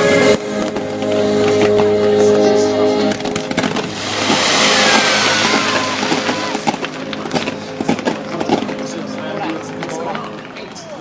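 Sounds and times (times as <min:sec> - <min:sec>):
fireworks cracking: 0:03.2 - 0:11.0
fireworks hissing rush: 0:03.4 - 0:07.6.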